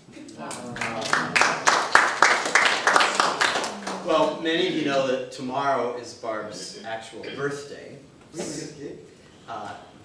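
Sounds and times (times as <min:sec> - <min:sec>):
small group applauding: 0:00.4 - 0:04.4.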